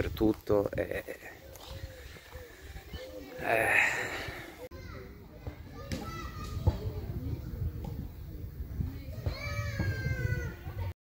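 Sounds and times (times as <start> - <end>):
children playing and calling: 1.0 - 11.0.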